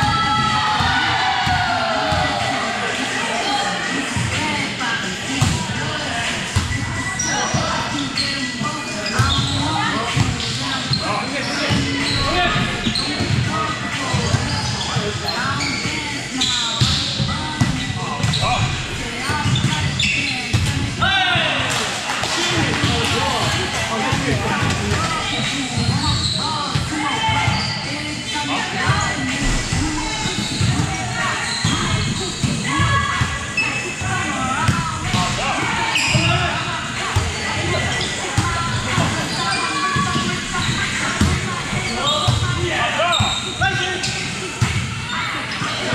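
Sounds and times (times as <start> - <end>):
players calling and chattering: 0.0 - 45.9.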